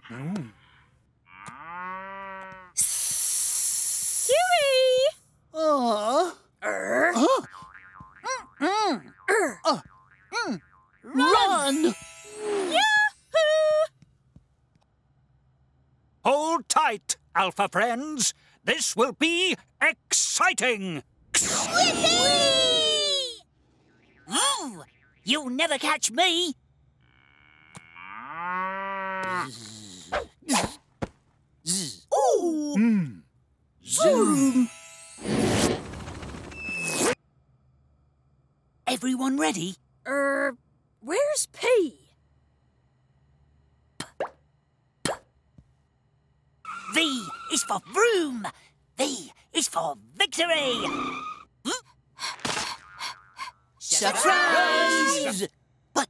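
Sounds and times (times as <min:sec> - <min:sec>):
cartoon cow mooing: 0:01.3 - 0:02.7, 0:27.0 - 0:30.1, 0:54.1 - 0:55.3
cartoon springy boings: 0:07.3 - 0:12.7, 0:52.5 - 0:53.5
short warbling tone: 0:07.5 - 0:12.6
cartoon voice noises: 0:08.2 - 0:13.9, 0:21.4 - 0:23.4, 0:33.9 - 0:34.7, 0:46.7 - 0:49.3, 0:53.3 - 0:56.0.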